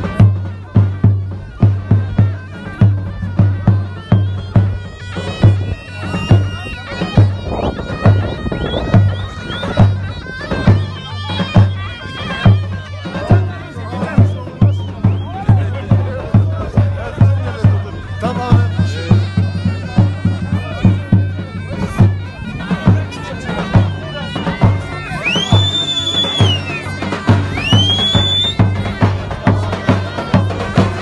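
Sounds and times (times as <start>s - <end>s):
big bass drum beating: 0.0s - 11.8s
shrill reed pipe melody: 0.0s - 31.0s.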